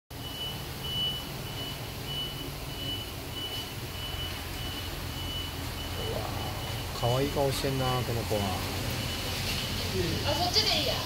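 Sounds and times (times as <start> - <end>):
high-pitched electronic beeping: 0.1 - 9.6
steady low hum: 0.1 - 11.0.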